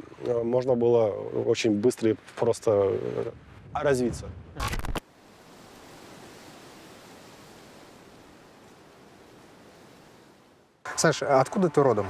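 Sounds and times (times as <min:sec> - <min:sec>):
faint outdoor ambient hiss: 0:00.0 - 0:12.0.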